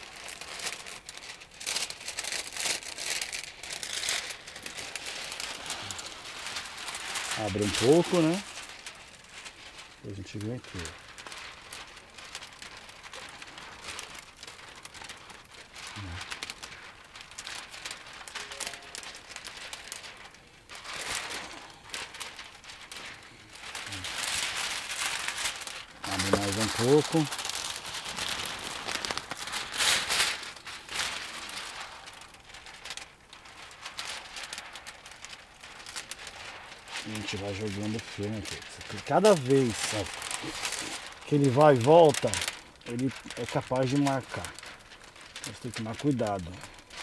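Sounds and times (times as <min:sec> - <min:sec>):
plastic film crinkling and rustling: 0:00.0 - 0:47.0.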